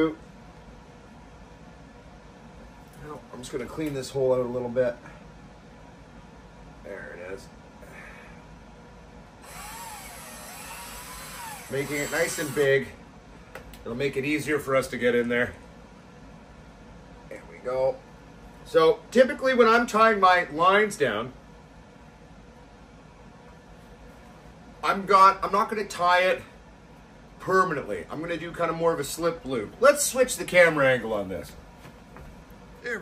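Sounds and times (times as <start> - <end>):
room tone hiss: 0.0 - 33.0
electric drill whining: 9.4 - 12.8.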